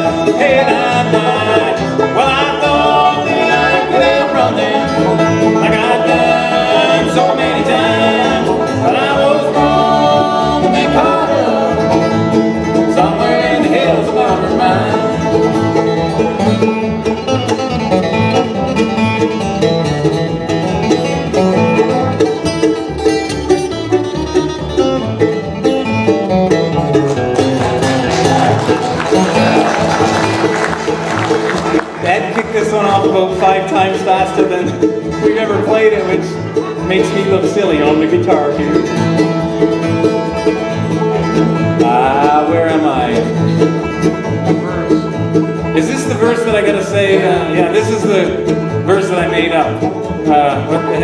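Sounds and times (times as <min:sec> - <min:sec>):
acoustic guitar: 0:00.0 - 0:51.0
banjo: 0:00.0 - 0:51.0
fiddle: 0:00.0 - 0:51.0
upright bass: 0:00.0 - 0:51.0.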